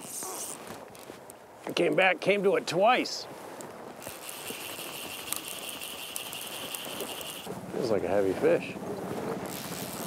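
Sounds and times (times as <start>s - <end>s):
fishing reel drag screaming: 0.0s - 0.6s, 4.0s - 7.5s, 9.5s - 10.0s.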